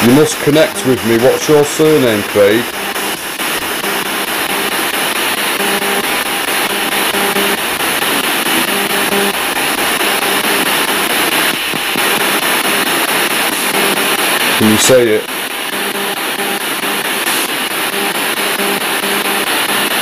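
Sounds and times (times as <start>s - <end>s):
person speaking: 0.0s - 3.1s, 14.5s - 15.3s
chopped radio static: 0.0s - 20.0s.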